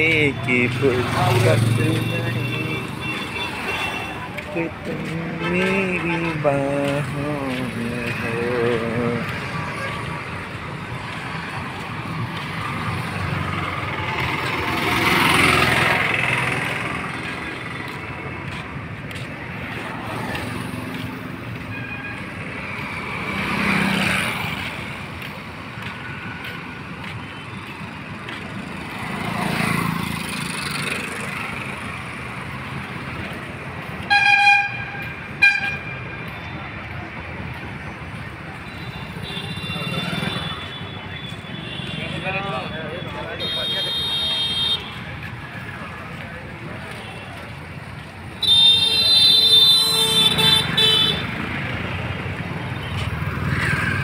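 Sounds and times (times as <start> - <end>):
vehicles passing: 0.0 - 54.0.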